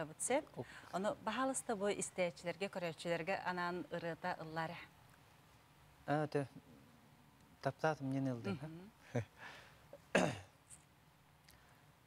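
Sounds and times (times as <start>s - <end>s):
man clearing throat or laughing: 10.1s - 10.5s.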